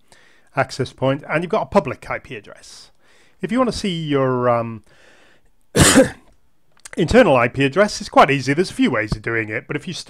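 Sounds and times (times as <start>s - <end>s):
man coughing: 5.8s - 6.3s.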